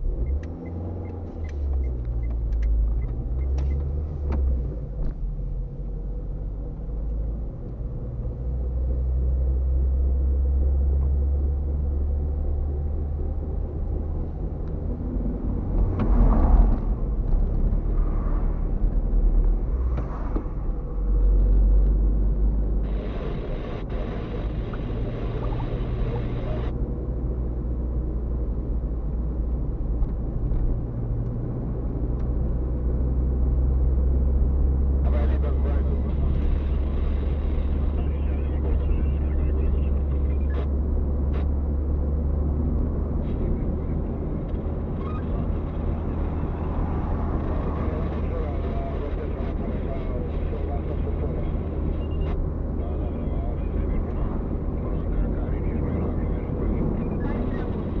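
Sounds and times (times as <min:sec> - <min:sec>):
car engine and tyre drone: 0:00.0 - 0:58.0.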